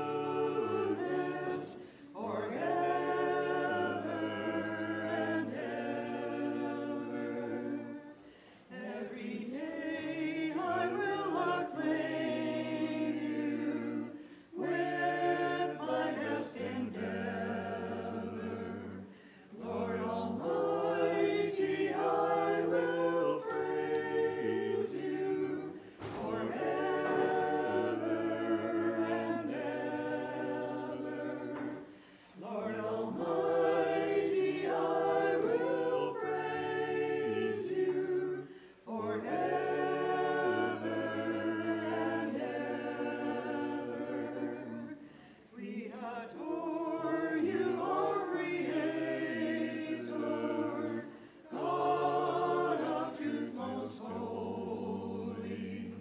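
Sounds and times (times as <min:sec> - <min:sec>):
unaccompanied choir singing a hymn: 0:00.0 - 0:56.0.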